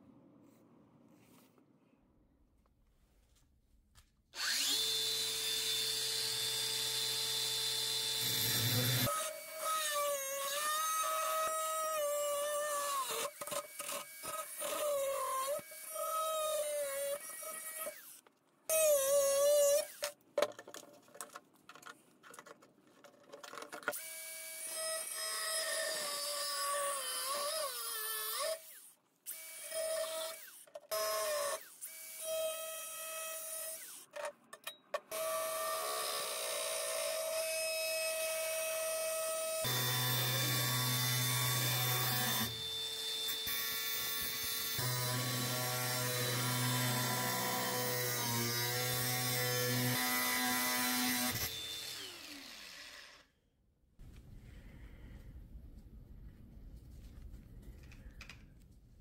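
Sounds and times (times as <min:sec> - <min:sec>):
angle grinder cutting steel: 0:04.4 - 0:20.1, 0:35.1 - 0:53.3.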